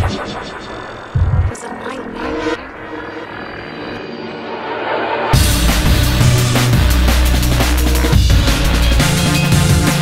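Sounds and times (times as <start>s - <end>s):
dark synth texture: 0.0s - 10.0s.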